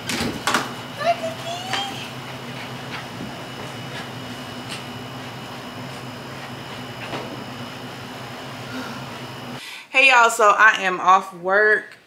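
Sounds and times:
low mechanical hum: 0.0s - 9.8s.

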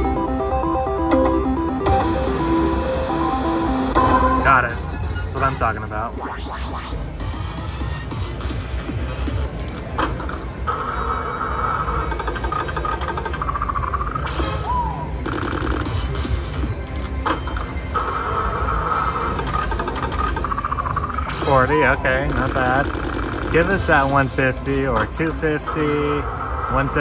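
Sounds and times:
synthesized slot machine jingle: 0.0s - 7.2s
low casino rumble: 0.0s - 27.0s
rapid electronic ticks: 6.2s - 14.6s, 15.2s - 18.2s, 19.2s - 27.0s.

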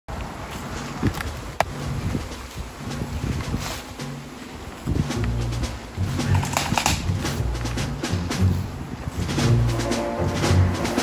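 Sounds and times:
wind rumbling on microphone: 0.1s - 11.0s.

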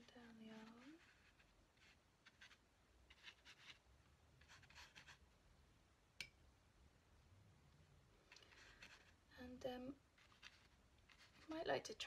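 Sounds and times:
drawing tool scratching on paper: 0.1s - 3.8s, 4.4s - 5.2s, 8.3s - 9.2s, 10.2s - 11.6s.

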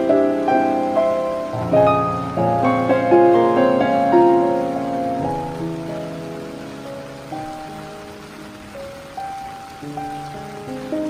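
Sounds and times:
rain falling: 0.0s - 11.0s
solo piano: 0.0s - 11.0s.

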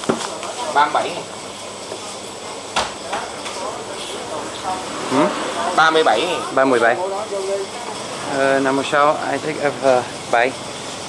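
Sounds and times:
faint voices: 0.0s - 10.5s.

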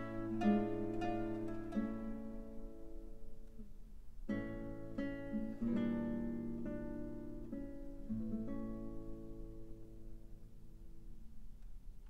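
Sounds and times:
mandolin trio playing: 0.0s - 2.2s.

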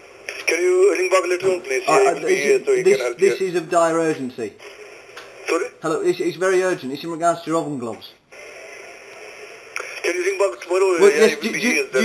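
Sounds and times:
person speaking on phone: 0.3s - 3.6s, 9.8s - 12.0s.

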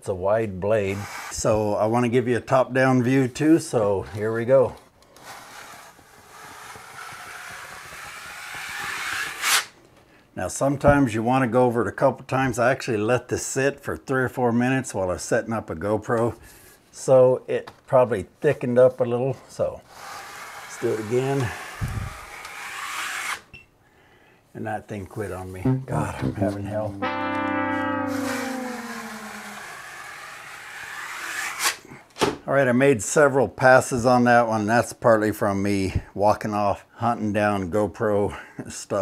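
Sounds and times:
blade scraping joint compound: 5.0s - 9.7s, 19.9s - 23.5s
metal blade scraping wet plaster: 20.2s - 23.5s.

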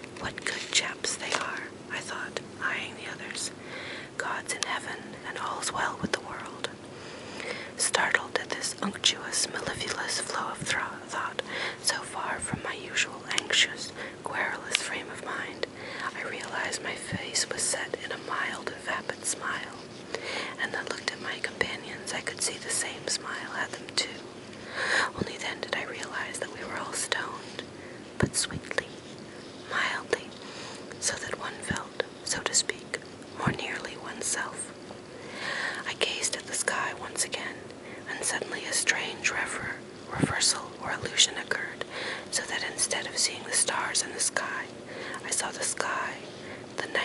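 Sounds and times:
person whispering: 0.2s - 3.6s, 4.2s - 6.8s, 7.5s - 24.2s, 25.0s - 34.7s, 35.6s - 47.0s.

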